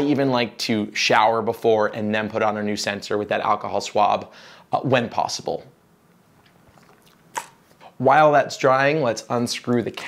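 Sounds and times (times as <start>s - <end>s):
person speaking: 0.0s - 5.8s, 6.7s - 10.0s.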